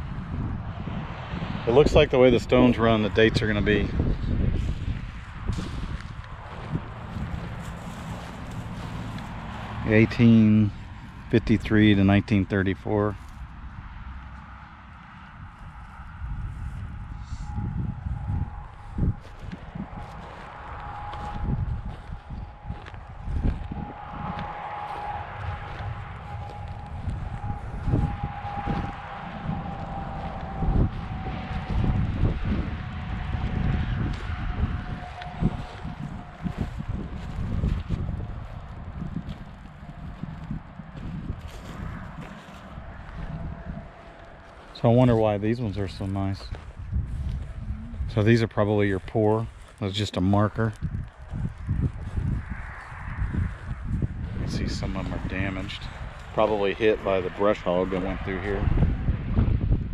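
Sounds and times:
wind buffeting microphone: 0.0 - 59.9
footsteps on dry grass: 4.1 - 11.7, 13.0 - 58.7.

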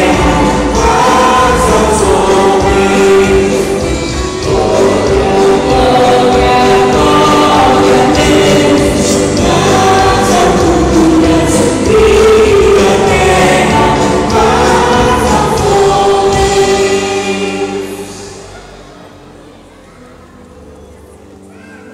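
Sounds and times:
crowd singing worship song: 0.0 - 19.0
music: 0.0 - 21.9.

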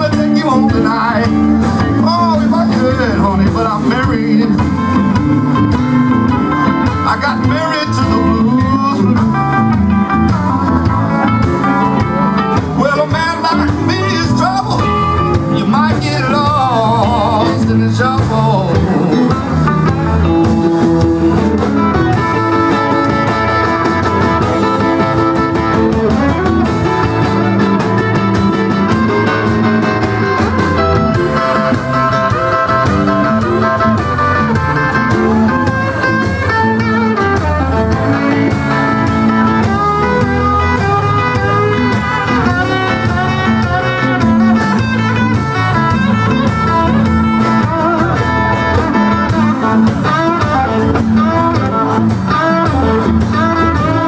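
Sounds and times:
electric blues band playing: 0.0 - 54.0
lead guitar bent notes: 0.0 - 54.0.

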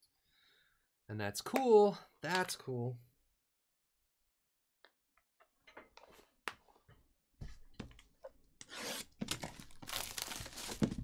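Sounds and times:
plastic wrap tearing and crinkling: 9.2 - 11.0.

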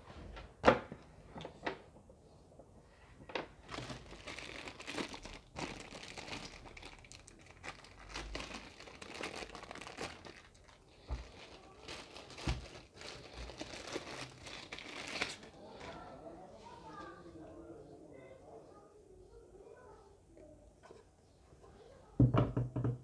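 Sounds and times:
plastic bag crinkling: 3.5 - 16.2.

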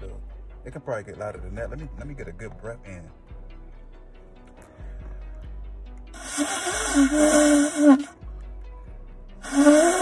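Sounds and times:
shofar blast: 6.2 - 8.1, 9.4 - 10.0.

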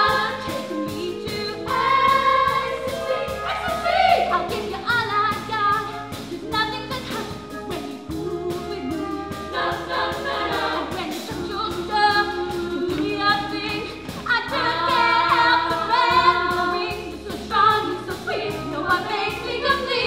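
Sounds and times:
girls' chorus singing gospel: 0.0 - 4.8, 8.2 - 20.0
band on keyboards: 0.0 - 20.0.

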